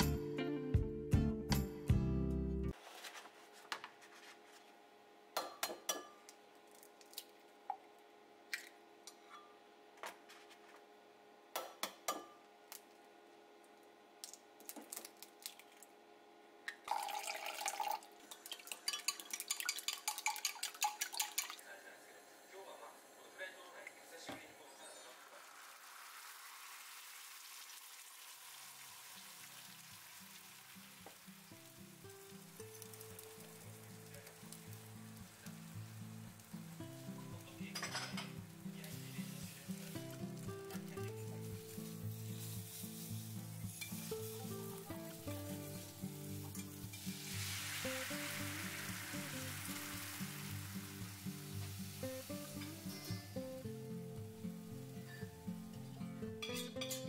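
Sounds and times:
background music: 0.0 - 2.8, 32.0 - 57.0
eggs sizzling in frying pan: 16.8 - 22.6, 24.5 - 53.9
eggs cracked against glass jug: 18.3 - 21.6
chopsticks clinking in glass jug: 18.5 - 21.6.

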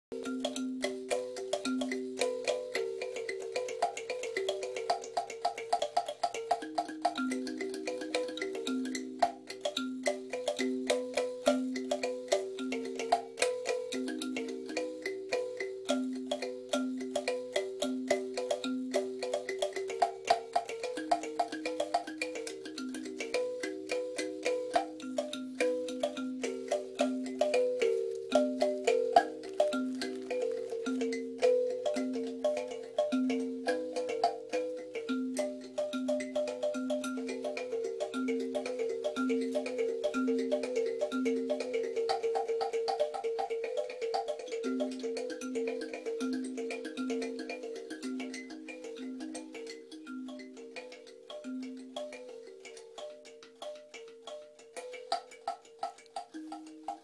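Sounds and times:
kalimba melody: 0.1 - 57.0.

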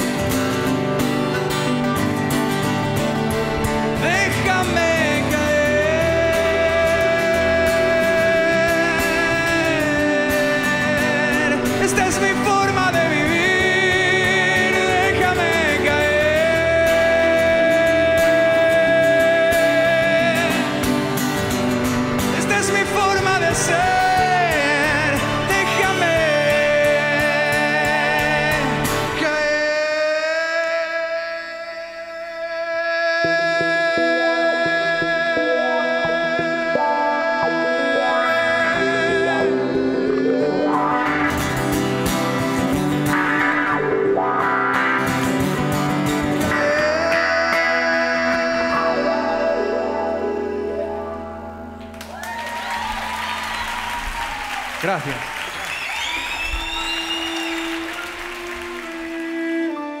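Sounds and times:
audience applauding: 51.9 - 60.0
violin long bowed note: 57.4 - 60.0.

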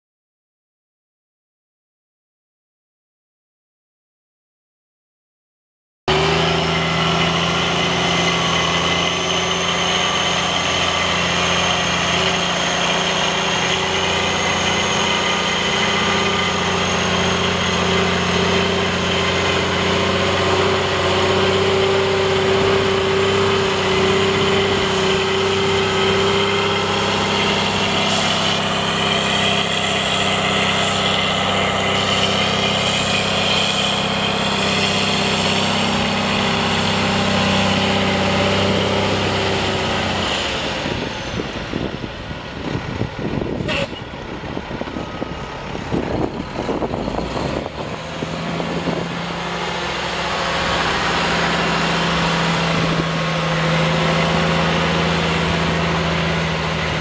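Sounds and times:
diesel truck engine running: 6.1 - 57.0.

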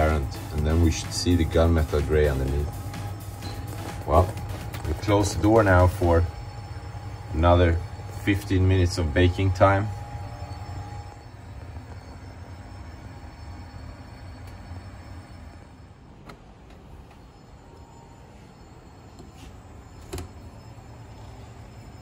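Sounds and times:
oven humming: 0.0 - 22.0.

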